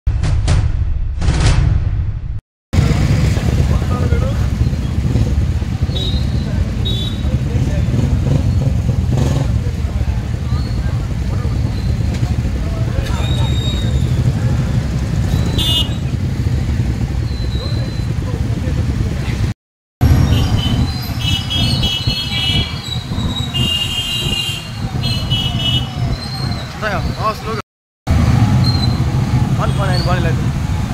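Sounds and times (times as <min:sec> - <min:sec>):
motorcycle engines rumbling: 0:02.8 - 0:30.9
horns tooting: 0:04.5 - 0:09.6, 0:10.4 - 0:18.2, 0:20.0 - 0:27.6, 0:28.4 - 0:30.5.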